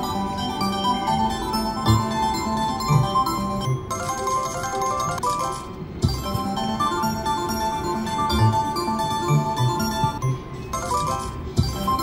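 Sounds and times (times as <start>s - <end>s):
slot machine electronic chimes: 0.0s - 12.0s
slot machine reels spinning: 0.0s - 12.0s.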